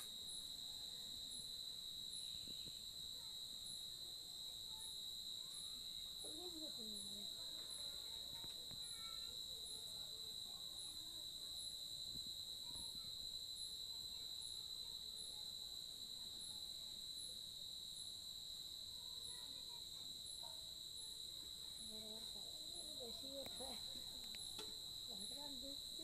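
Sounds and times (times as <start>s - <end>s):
crickets trilling: 0.0s - 26.0s
high insect chirp: 0.0s - 26.0s.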